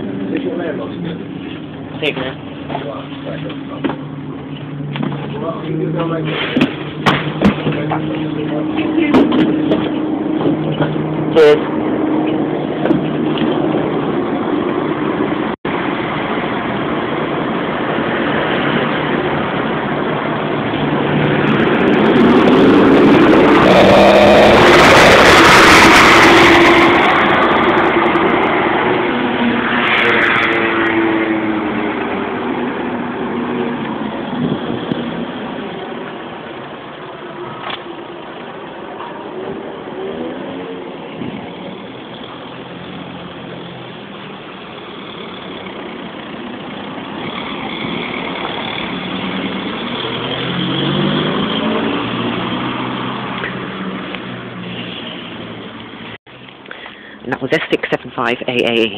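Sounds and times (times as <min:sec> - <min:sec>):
passing vehicle engine: 0:00.0 - 0:58.0
bus diesel engine revving: 0:20.9 - 0:30.7.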